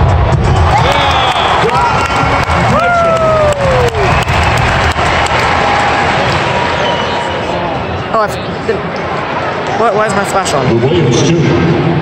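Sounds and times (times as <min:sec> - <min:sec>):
crowd cheering and applause: 0:00.0 - 0:08.2.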